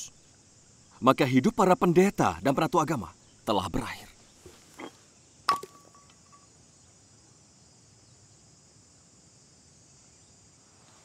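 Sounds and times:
faint insect hum: 0:00.0 - 0:11.0
metal flask clanking on landing: 0:04.5 - 0:06.5.

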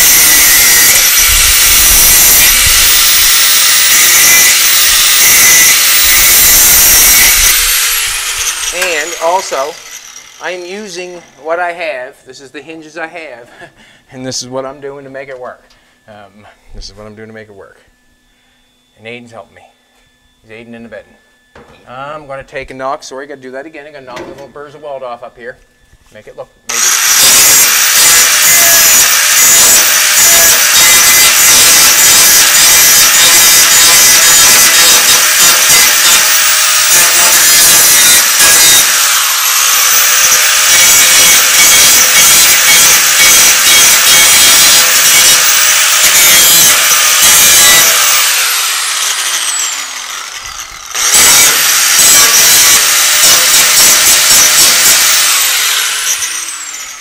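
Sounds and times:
grinder spinning down whine: 0:00.0 - 0:11.5, 0:26.7 - 0:57.0
angle grinder grinding steel: 0:00.0 - 0:11.7, 0:26.6 - 0:57.0.

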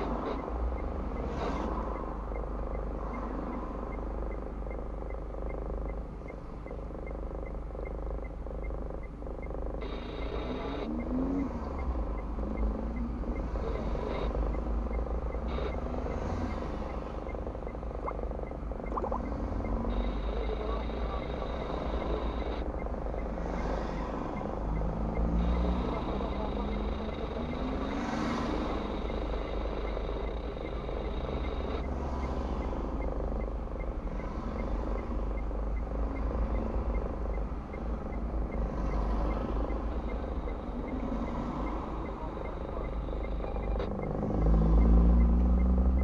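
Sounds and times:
cars driving past: 0:00.0 - 0:04.4, 0:09.8 - 0:46.0
car engine idling: 0:01.8 - 0:46.0.

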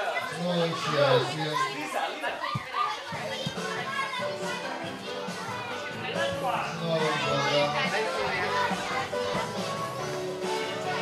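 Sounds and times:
people chattering: 0:00.0 - 0:11.0
background music: 0:03.1 - 0:11.0.

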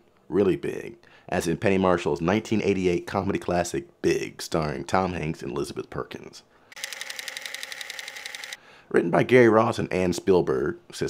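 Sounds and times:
film camera mechanism clattering: 0:06.8 - 0:08.6.

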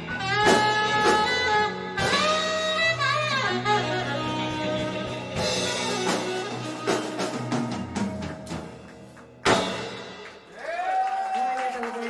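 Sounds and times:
live rock band playing: 0:00.0 - 0:10.6.

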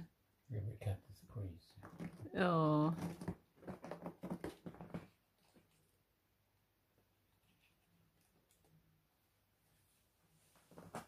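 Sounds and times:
cat scratching cardboard: 0:02.9 - 0:05.8.

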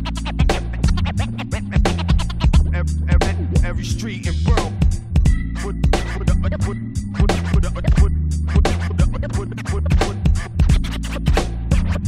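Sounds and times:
heavy bass line: 0:00.0 - 0:12.0
hip hop beat: 0:00.0 - 0:12.0
turntable scratching: 0:00.0 - 0:12.0.

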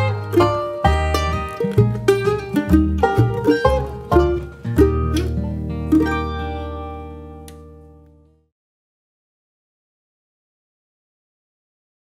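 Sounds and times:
bluegrass band playing: 0:00.0 - 0:07.6.

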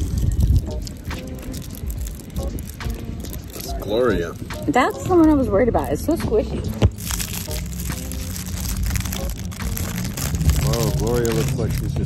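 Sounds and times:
plastic candy wrapper crinkling: 0:00.0 - 0:04.5, 0:06.8 - 0:12.0
steady low rumble: 0:00.0 - 0:12.0.

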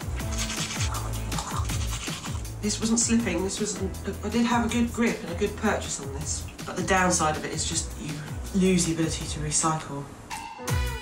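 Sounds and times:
electronic music with bass line: 0:00.0 - 0:02.7.

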